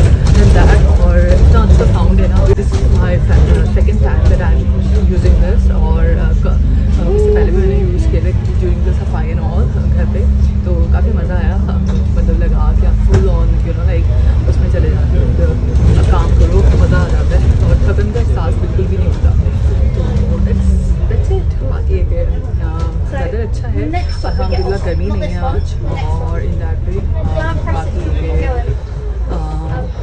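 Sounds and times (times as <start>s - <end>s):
bus engine and road rumble: 0.0s - 30.0s
woman talking: 0.0s - 30.0s.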